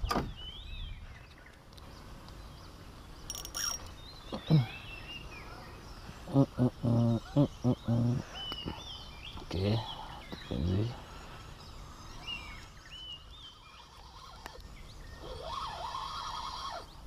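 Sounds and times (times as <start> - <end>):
lower warbling bird call: 3.3 - 17.0
person's low voice: 6.2 - 8.8.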